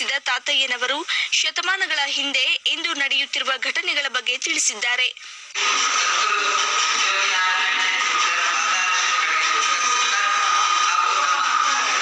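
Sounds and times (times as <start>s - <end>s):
music over loudspeaker: 5.5s - 12.0s.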